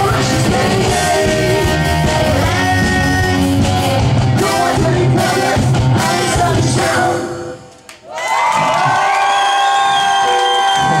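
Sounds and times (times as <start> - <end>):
crowd cheering: 7.9 - 11.0.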